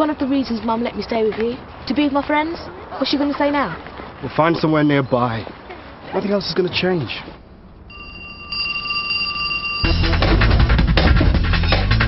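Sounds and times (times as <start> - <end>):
electric doorbell ringing: 7.9 - 10.2.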